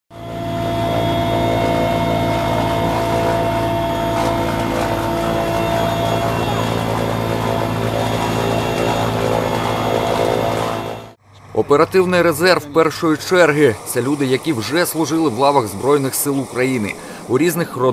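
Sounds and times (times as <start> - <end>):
helicopter engine and rotor drone: 0.1 - 17.9.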